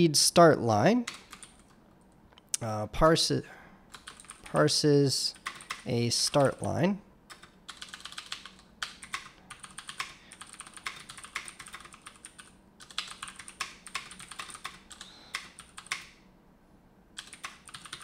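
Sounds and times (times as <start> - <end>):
computer keyboard typing: 1.1 - 1.8, 3.9 - 4.7, 5.3 - 6.7, 7.3 - 16.2, 17.2 - 18.0.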